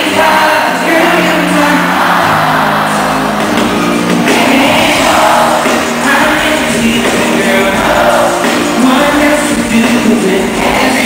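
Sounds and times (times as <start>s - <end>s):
audience voices: 0.0s - 11.0s
live band with singing: 0.0s - 11.0s.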